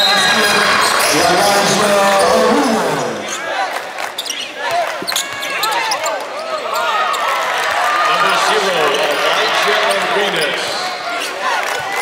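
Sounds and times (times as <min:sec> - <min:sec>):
voices of players and spectators: 0:00.0 - 0:12.0
sneakers squeaking: 0:04.2 - 0:07.8.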